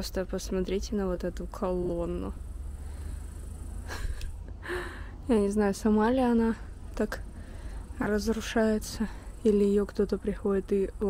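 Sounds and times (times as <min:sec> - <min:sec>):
steady low rumble: 0:00.0 - 0:11.0
intake of breath: 0:02.7 - 0:05.2, 0:07.3 - 0:08.0
faint clicks: 0:03.9 - 0:04.4.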